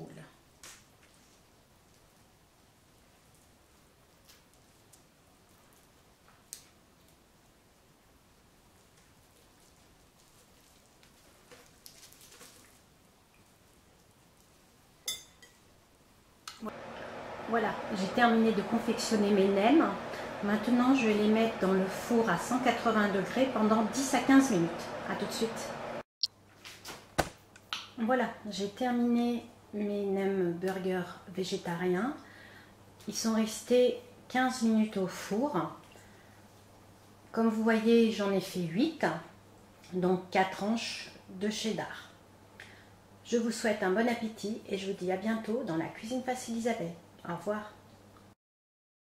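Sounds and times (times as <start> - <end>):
pastry and paper crinkling: 9.1 - 13.0.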